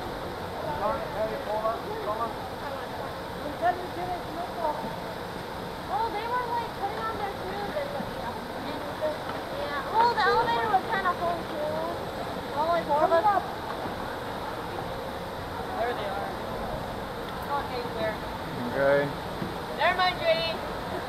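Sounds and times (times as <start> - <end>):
distant chatter of people: 0.0 - 21.0.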